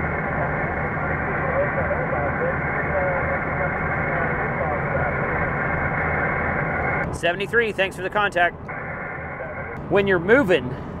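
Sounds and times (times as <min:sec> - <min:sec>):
radio static: 0:00.0 - 0:09.8
truck road noise: 0:00.0 - 0:11.0
faint voice over radio: 0:00.2 - 0:05.4.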